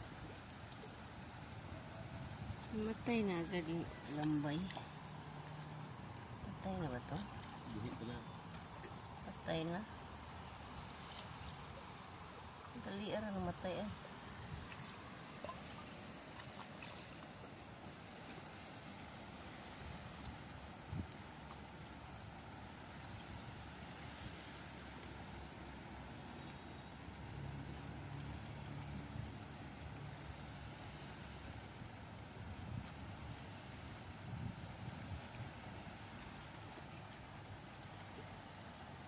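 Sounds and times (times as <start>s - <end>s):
water lapping against rocks: 0.0s - 39.0s
wind: 0.0s - 39.0s.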